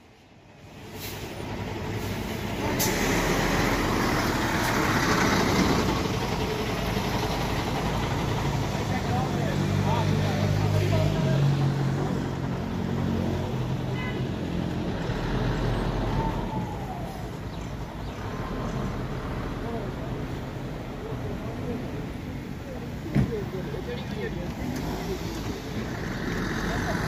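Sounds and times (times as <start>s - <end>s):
heavy road traffic: 0.0s - 27.0s.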